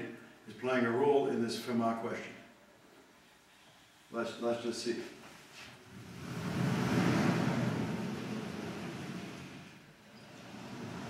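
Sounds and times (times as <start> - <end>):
sliding chalkboard panels rumbling: 5.6 - 11.0.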